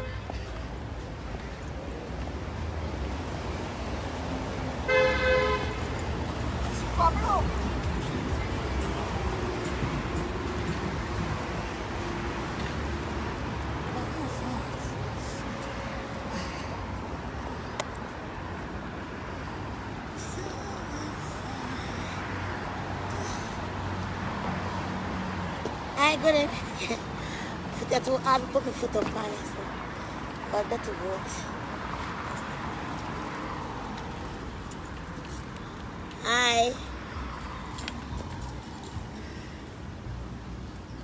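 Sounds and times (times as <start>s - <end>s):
passing cars hum: 0.0s - 41.0s
car horn two-tone toot: 4.9s - 5.9s.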